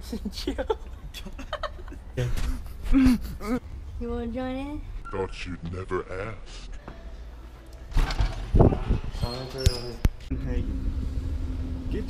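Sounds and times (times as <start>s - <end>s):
vehicle engine hum in cabin: 10.3s - 12.0s.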